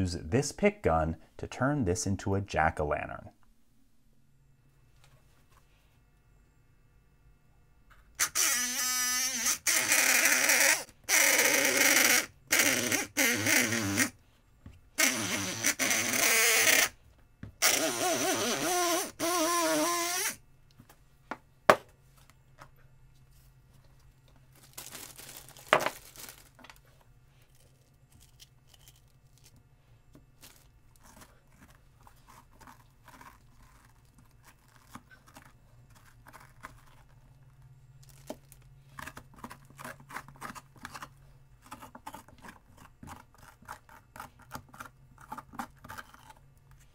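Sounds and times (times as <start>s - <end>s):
electric lockpick gun buzzing: 8.2s - 14.1s, 17.6s - 20.4s
faint scraping and handling: 26.7s - 37.7s.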